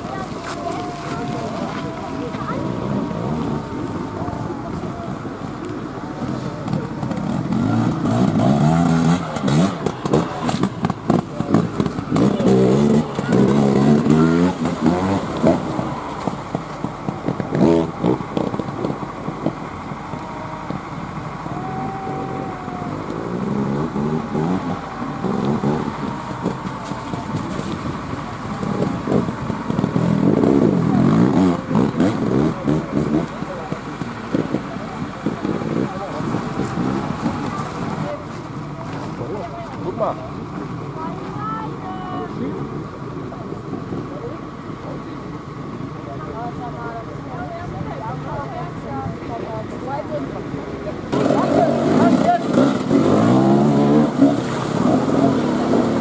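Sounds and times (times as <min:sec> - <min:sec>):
dirt bike engine revving: 0:06.7 - 0:19.8, 0:22.9 - 0:38.2, 0:51.1 - 0:56.0.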